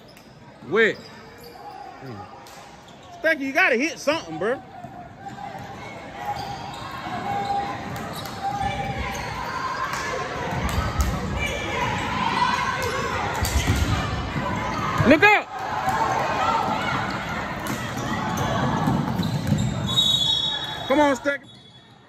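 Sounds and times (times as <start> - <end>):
murmur of spectators: 0.0 - 22.0
basketball bouncing on wooden floor: 18.8 - 19.7.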